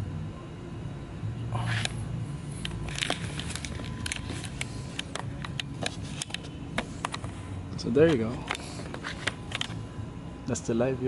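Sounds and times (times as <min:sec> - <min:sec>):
steady low background hum: 0:00.0 - 0:11.0.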